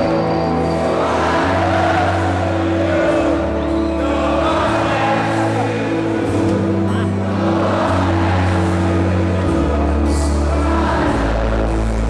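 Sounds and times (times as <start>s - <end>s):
live band keyboard and bass chords: 0.0s - 12.0s.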